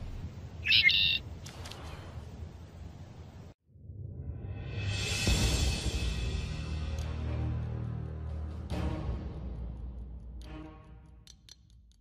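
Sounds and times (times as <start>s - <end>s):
bird squawk: 0.6s - 1.2s.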